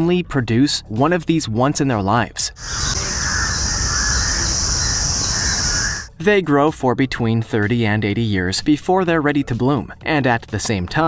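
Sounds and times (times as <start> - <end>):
faint bird calls: 2.6 - 6.1
steady high-pitched drone: 2.6 - 6.1.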